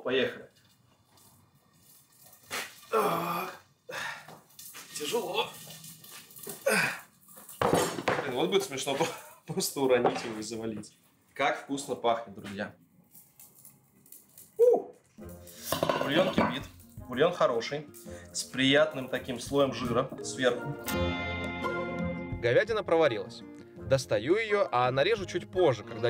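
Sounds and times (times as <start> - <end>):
man grunting with effort: 2.9 - 4.0, 6.6 - 7.0.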